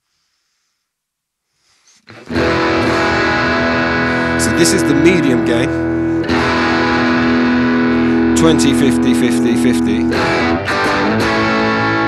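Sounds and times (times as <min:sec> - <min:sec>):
faint breath-like hiss: 0:00.0 - 0:02.1.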